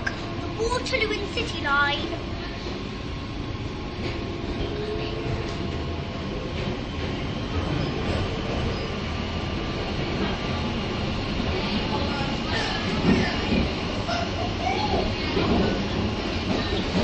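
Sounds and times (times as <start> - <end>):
faint train whine: 0.0 - 17.0
underground train rumble: 0.0 - 17.0.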